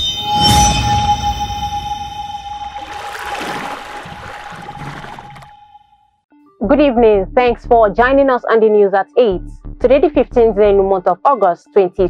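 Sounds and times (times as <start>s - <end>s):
whooshing swell: 0.0s - 5.8s
held tone with ringing overtones: 0.0s - 6.0s.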